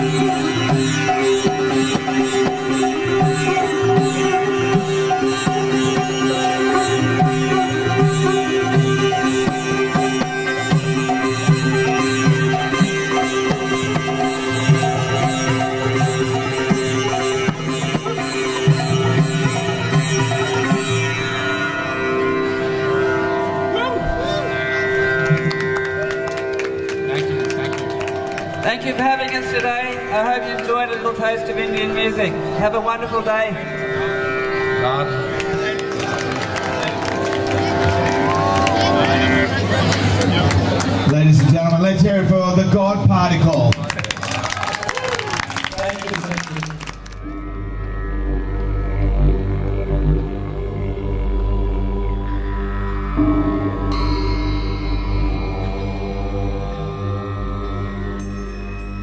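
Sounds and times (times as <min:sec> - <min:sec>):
sitar plucked notes: 0:00.0 - 0:43.9, 0:45.8 - 0:59.0
low drone music: 0:00.0 - 0:44.4, 0:45.6 - 0:59.0
audience applause: 0:25.1 - 0:28.8, 0:35.4 - 0:41.8, 0:43.5 - 0:47.2
sustained drone: 0:47.1 - 0:59.0.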